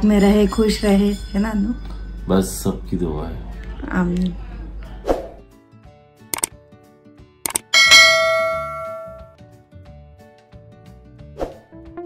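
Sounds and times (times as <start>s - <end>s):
bell ding: 7.7s - 9.3s.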